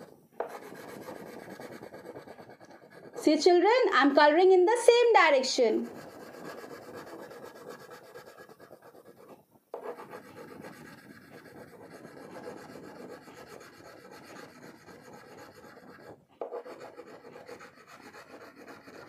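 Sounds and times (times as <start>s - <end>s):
crayon rubbing on paper: 0.0s - 3.4s, 5.7s - 19.0s.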